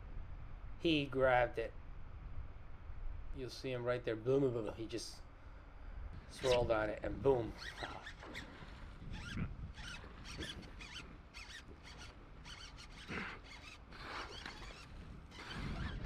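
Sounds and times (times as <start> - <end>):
low wind rumble: 0.0 - 16.0.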